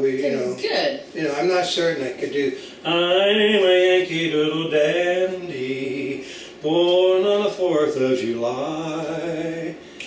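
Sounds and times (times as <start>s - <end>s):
man singing unaccompanied: 1.8s - 9.9s.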